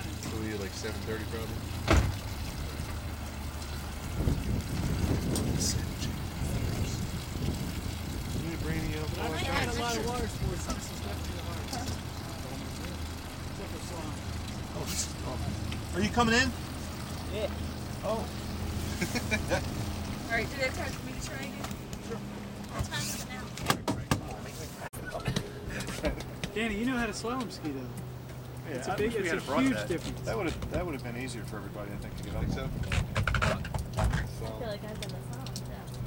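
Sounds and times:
boat engine idling: 0.0s - 23.6s, 25.0s - 36.0s.

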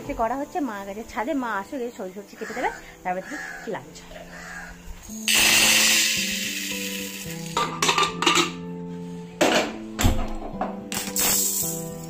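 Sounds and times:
lentils poured into metal pot: 5.2s - 7.6s, 11.2s - 12.0s.

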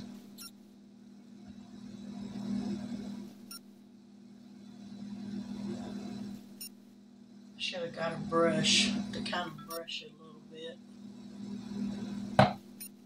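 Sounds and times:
low mechanical hum: 0.0s - 13.0s.

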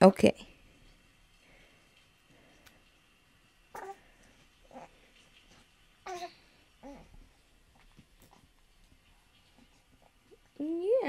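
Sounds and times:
baby cooing: 3.7s - 4.0s, 6.0s - 7.2s.

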